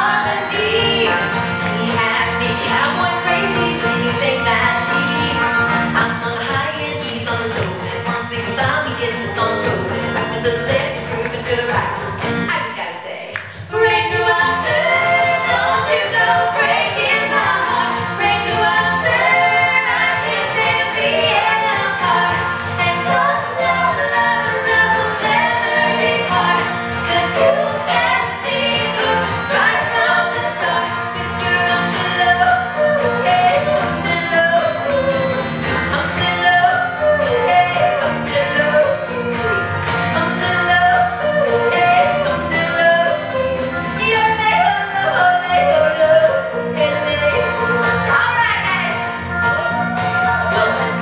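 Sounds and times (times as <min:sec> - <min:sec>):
women singing in harmony: 0:00.0 - 0:12.3, 0:13.5 - 0:51.0
banjo: 0:00.0 - 0:12.6, 0:13.7 - 0:51.0
acoustic band playing: 0:00.0 - 0:51.0
percussion beat: 0:00.0 - 0:51.0.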